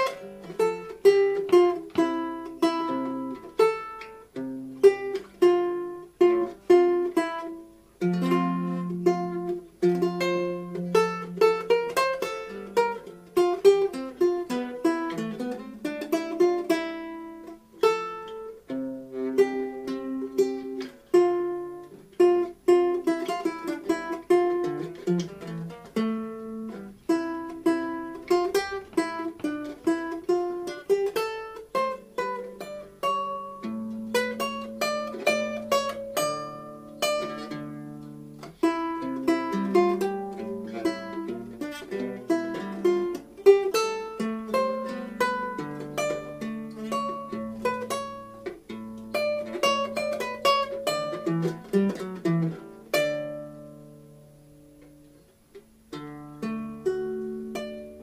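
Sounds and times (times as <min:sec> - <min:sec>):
plucked string instrument: 0:00.0 - 0:58.0.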